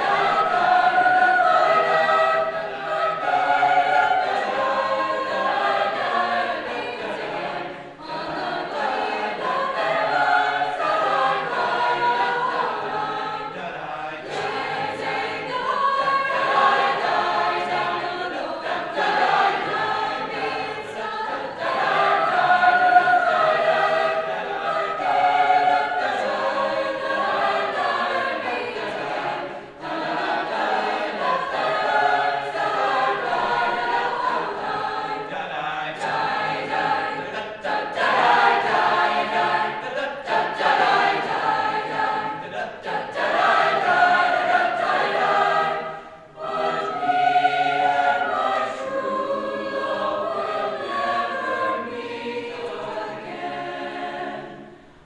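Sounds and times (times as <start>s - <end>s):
choir singing in parts: 0.0s - 55.0s.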